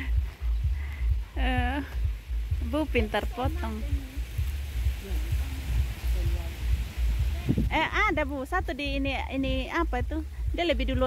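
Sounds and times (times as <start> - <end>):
low rumble on microphone: 0.0 - 11.0.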